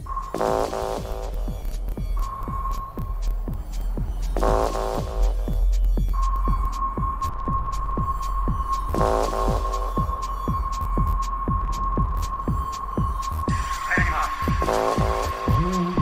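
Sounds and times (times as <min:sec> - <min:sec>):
deep bass: 0:00.0 - 0:16.0
hi-hat ticks: 0:00.0 - 0:16.0
techno kick drum: 0:00.0 - 0:16.0.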